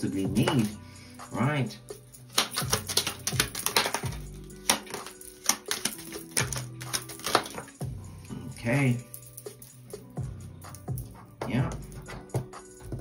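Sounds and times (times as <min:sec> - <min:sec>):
soft background music: 0:00.0 - 0:13.0
cards snapping and tapping on table: 0:02.3 - 0:07.8.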